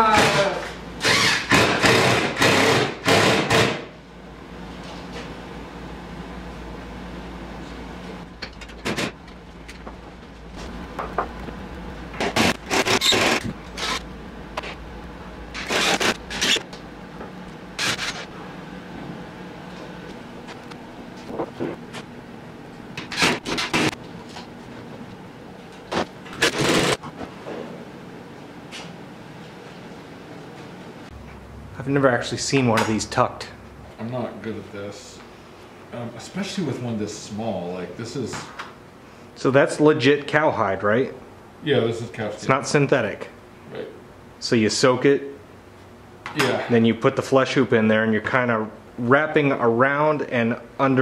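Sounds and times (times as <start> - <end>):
low steady hum: 4.0 - 51.0.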